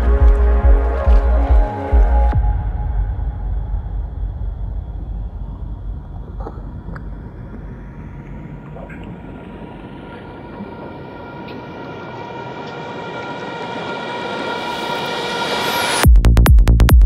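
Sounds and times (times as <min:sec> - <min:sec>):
deep bass: 0:00.0 - 0:09.3, 0:16.0 - 0:17.0
rising noise sweep: 0:00.0 - 0:16.1.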